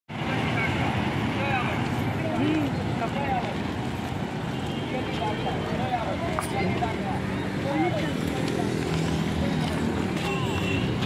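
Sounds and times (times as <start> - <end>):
road traffic rumble: 0.1 - 11.0.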